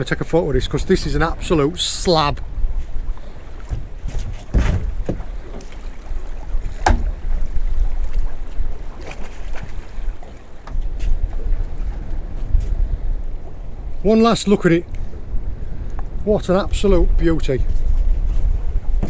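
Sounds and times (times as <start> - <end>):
wind blowing across microphone: 0.0 - 19.0
knocks in boat: 3.6 - 5.8, 6.6 - 7.5.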